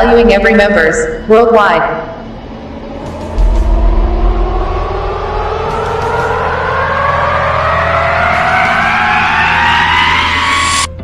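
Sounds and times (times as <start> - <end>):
rising pitched tone: 1.8 - 11.0
deep low rumble: 1.9 - 10.9.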